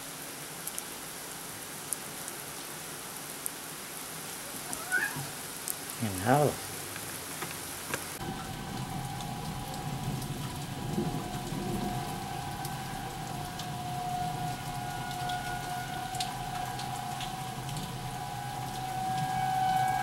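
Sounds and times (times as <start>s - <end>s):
steady rain falling: 0.0s - 20.0s
low thunder rumble: 8.2s - 20.0s
steady high tone: 8.2s - 20.0s.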